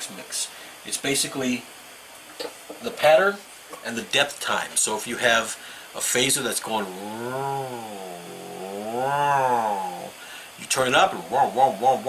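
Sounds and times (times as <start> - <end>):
man imitating phaser sweep: 6.8 - 12.0.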